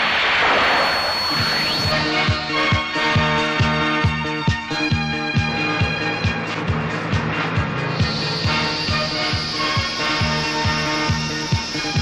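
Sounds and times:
high whistle: 0:00.0 - 0:02.3, 0:07.9 - 0:12.0
music with thumping beat: 0:02.2 - 0:12.0.

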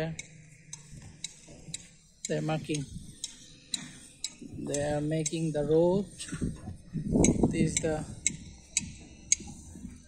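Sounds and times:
faint regular ticking: 0:00.0 - 0:10.0
low background hum: 0:00.0 - 0:10.0.

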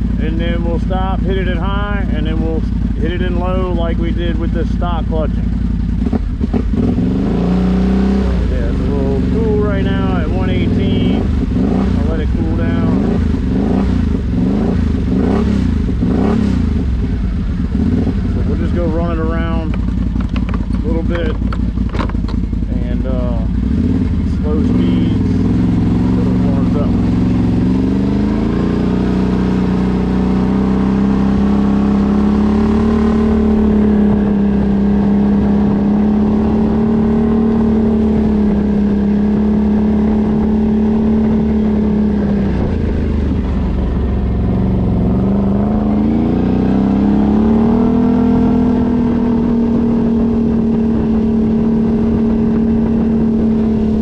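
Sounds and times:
quad bike engine pulling away: 0:17.6 - 0:54.0.

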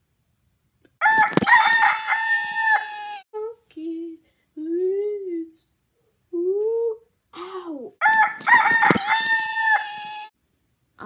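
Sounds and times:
girl making rooster-like call: 0:02.0 - 0:03.2, 0:09.0 - 0:10.3.

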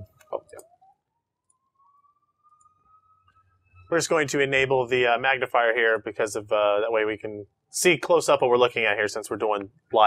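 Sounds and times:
faint thin tone rising in pitch: 0:00.0 - 0:06.0.

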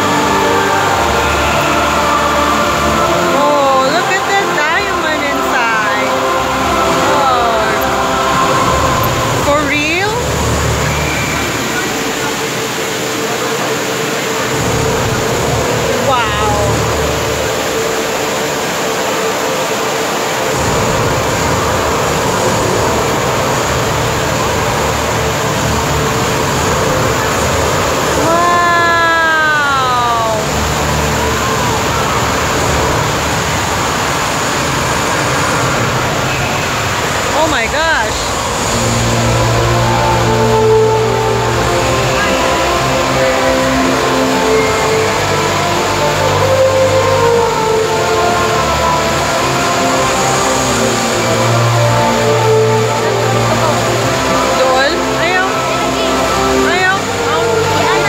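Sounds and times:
crowd chatter: 0:00.0 - 0:58.0
fountain water cascading: 0:00.0 - 0:58.0
long falling sound: 0:26.4 - 0:42.5.

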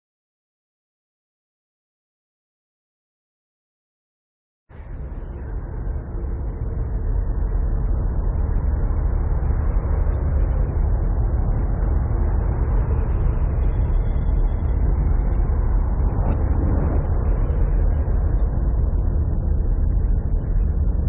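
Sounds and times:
bass-heavy wall of noise: 0:04.7 - 0:21.0.

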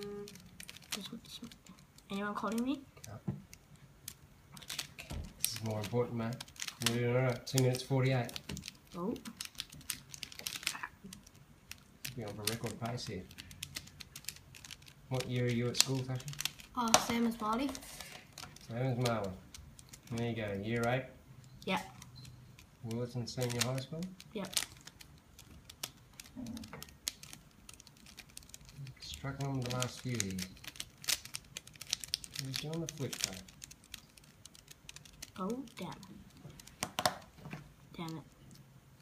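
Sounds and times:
puzzle cube clicking: 0:00.0 - 0:38.6.

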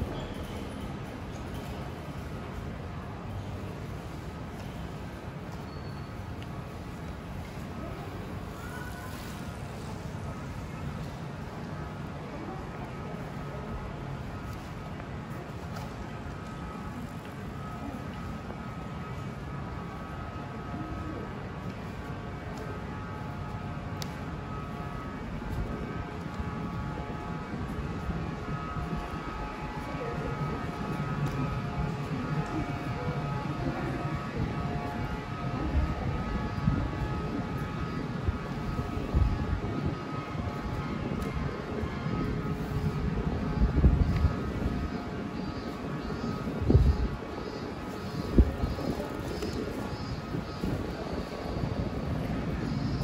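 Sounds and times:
low rumble of traffic: 0:00.0 - 0:53.0.

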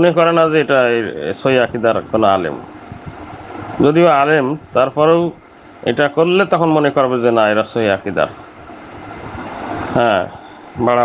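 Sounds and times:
man speaking: 0:00.0 - 0:02.7, 0:03.8 - 0:08.4, 0:10.0 - 0:11.0
steady rushing noise: 0:00.0 - 0:11.0.

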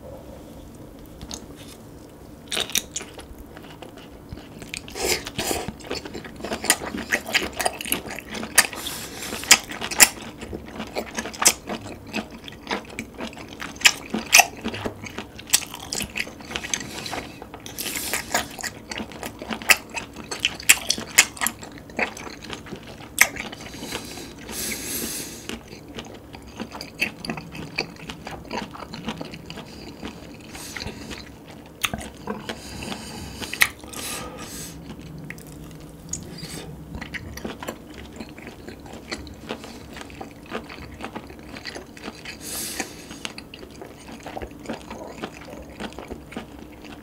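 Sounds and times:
wet close-up chewing: 0:01.0 - 0:47.0.

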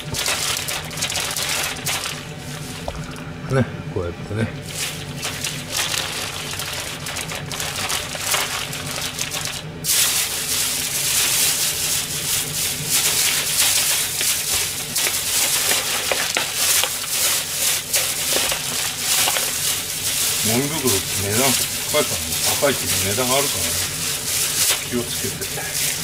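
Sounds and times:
newspaper crumpling: 0:00.0 - 0:03.0, 0:04.6 - 0:26.0
plastic bag rustling: 0:00.0 - 0:03.2, 0:04.6 - 0:26.0.

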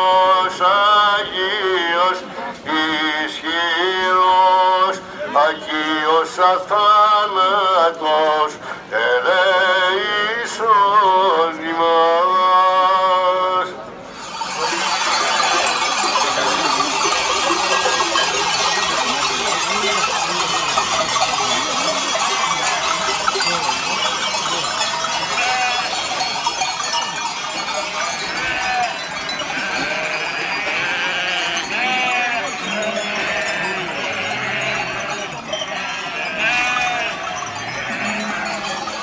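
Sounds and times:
sheep bells clanking: 0:14.1 - 0:39.0
sheep bleating: 0:25.1 - 0:26.2, 0:28.1 - 0:38.9.

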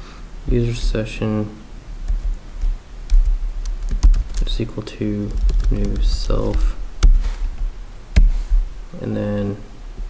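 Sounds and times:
keyboard typing: 0:02.1 - 0:04.6, 0:05.3 - 0:07.6.

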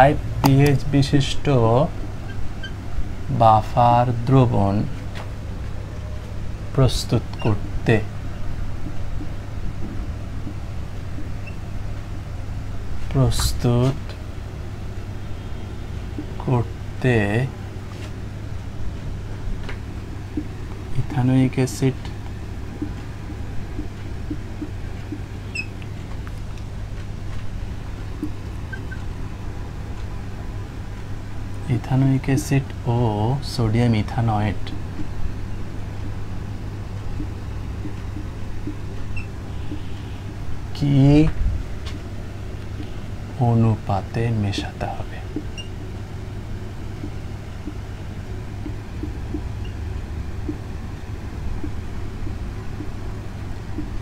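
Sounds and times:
low background rumble: 0:00.0 - 0:54.0
low room hum: 0:00.0 - 0:54.0.

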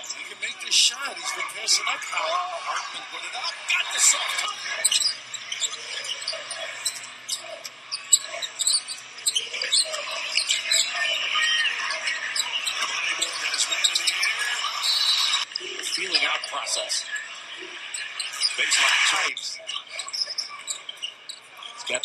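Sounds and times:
crowd murmur: 0:00.0 - 0:19.4
sneakers squeaking on hardwood: 0:04.4 - 0:16.1, 0:19.6 - 0:22.0.

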